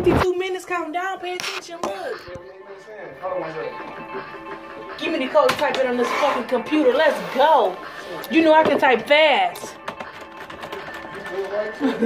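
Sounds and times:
background music: 0.0 - 12.0
fast typing on keyboard: 9.6 - 12.0.

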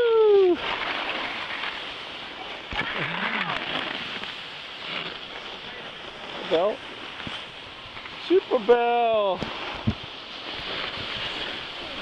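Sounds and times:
person calling out: 0.0 - 0.6
skis sliding on snow: 0.0 - 12.0
wind on microphone: 9.3 - 12.0.

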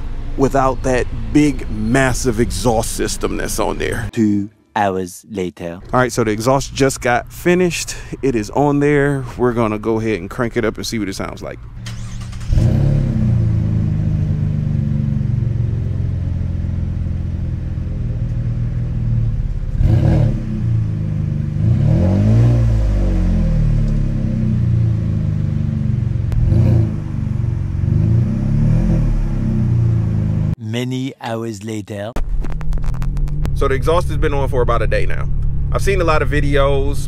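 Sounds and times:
engine revving: 0.0 - 4.1, 5.8 - 30.6, 32.2 - 37.0
truck engine starting and idling: 0.0 - 4.1, 5.8 - 30.6, 32.2 - 37.0.

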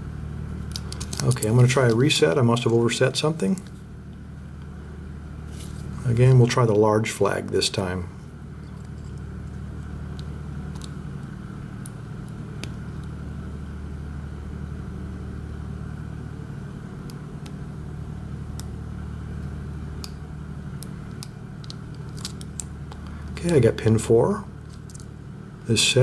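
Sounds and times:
generator engine drone: 0.0 - 26.0.

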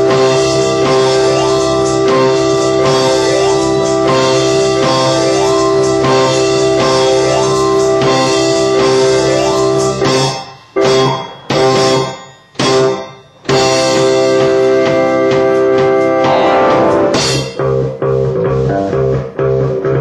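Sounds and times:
band music with keyboard chords: 0.0 - 20.0.

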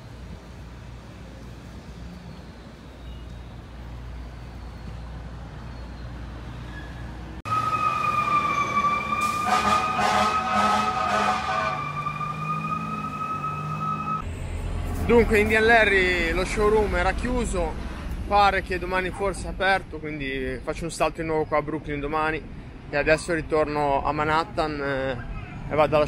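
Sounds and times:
truck engine: 0.0 - 18.7
street traffic rumble: 0.0 - 26.0
fire engine siren: 7.4 - 14.2.

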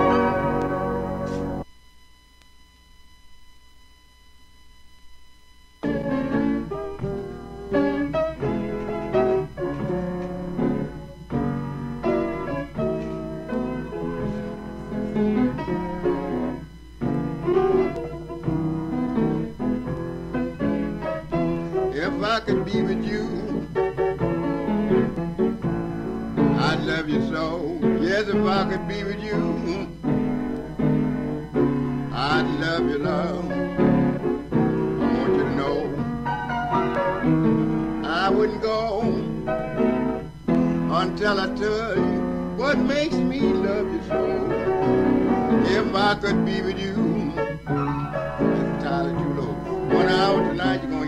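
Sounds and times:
blues piano: 0.0 - 1.7, 5.8 - 51.0
person singing: 21.4 - 23.8, 26.4 - 30.0, 32.1 - 34.0, 35.0 - 36.0, 38.0 - 39.5, 40.5 - 47.7, 48.4 - 51.0.

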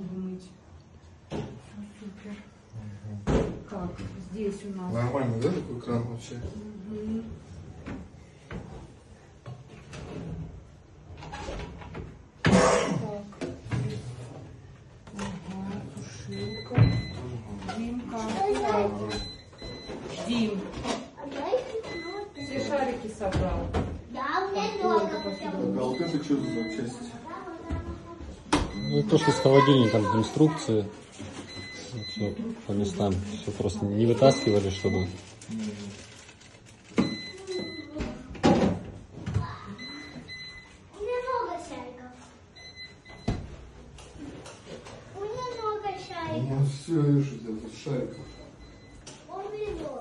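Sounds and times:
freezer alarm beeps: 16.1 - 20.8, 21.8 - 23.4, 24.6 - 27.1, 28.5 - 35.8, 36.8 - 38.2, 39.7 - 40.8, 42.5 - 43.6, 45.2 - 46.6, 47.7 - 49.8
high electronic beep: 24.7 - 27.0, 28.7 - 29.7.

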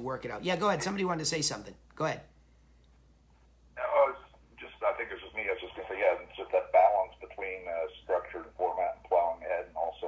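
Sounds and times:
person speaking over phone line: 3.8 - 10.0.

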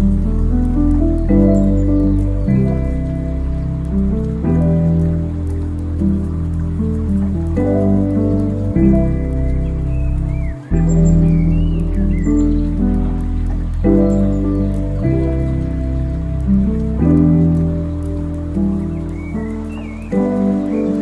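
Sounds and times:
crackling clicks: 0.0 - 21.0
lo-fi instrumental music: 0.0 - 21.0.

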